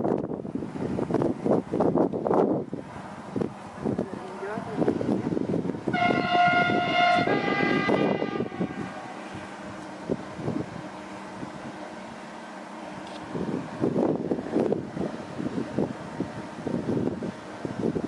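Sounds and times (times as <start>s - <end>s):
wind gusts on microphone: 0.0s - 12.0s, 12.9s - 18.0s
two-note train horn: 5.9s - 9.6s.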